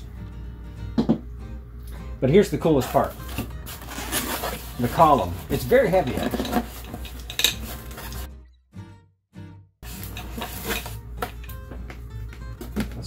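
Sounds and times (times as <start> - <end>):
metal parts clinking and knocking: 6.0 - 8.2.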